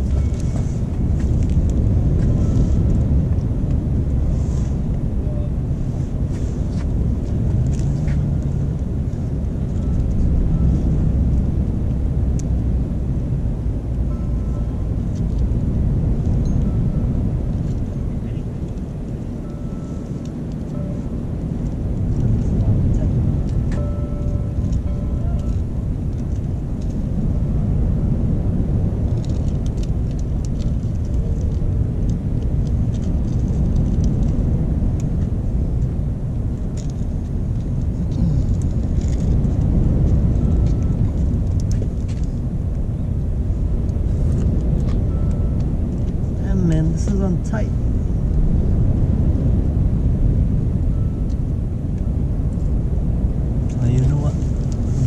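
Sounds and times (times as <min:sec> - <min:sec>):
low outdoor rumble: 0:00.0 - 0:55.0.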